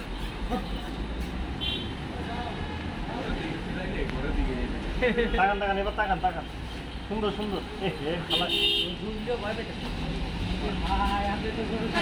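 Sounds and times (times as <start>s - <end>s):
men talking: 2.1s - 12.0s
vehicle horn toot: 8.3s - 9.0s.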